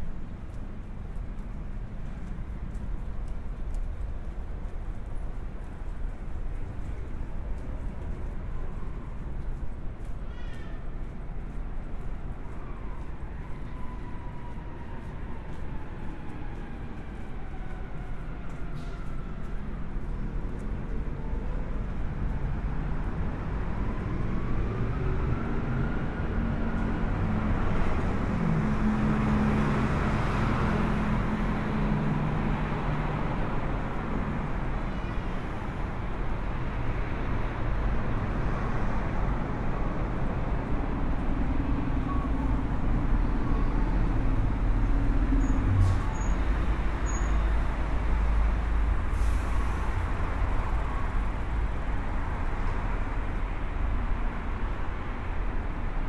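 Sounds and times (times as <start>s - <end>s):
passing cars and buses: 0.0s - 56.0s.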